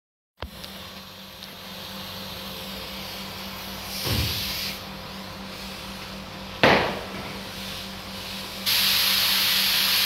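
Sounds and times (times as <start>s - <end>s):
steady low hum: 0.4s - 10.0s
spray gun compressed air hiss: 2.9s - 4.9s, 7.4s - 10.0s.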